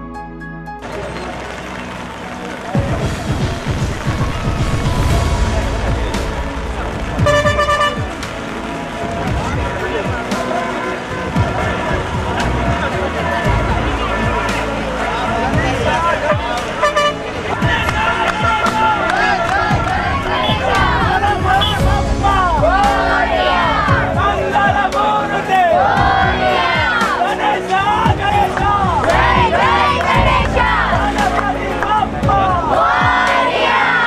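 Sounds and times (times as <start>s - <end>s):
music: 0.0s - 34.0s
crowd voices: 0.8s - 34.0s
horn toot: 3.2s - 10.8s, 16.7s - 23.4s.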